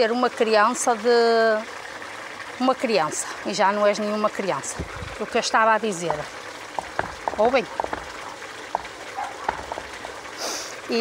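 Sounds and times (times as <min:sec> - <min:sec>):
stream trickling over rocks: 0:00.0 - 0:11.0
brief hiss: 0:10.4 - 0:10.7.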